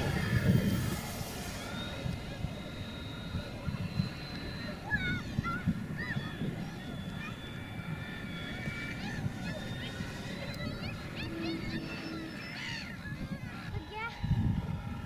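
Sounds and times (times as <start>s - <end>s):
model plane motor droning: 0.0s - 15.0s.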